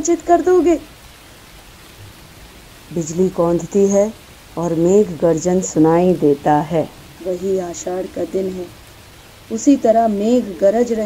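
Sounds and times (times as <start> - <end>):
steady rain: 0.0 - 11.0.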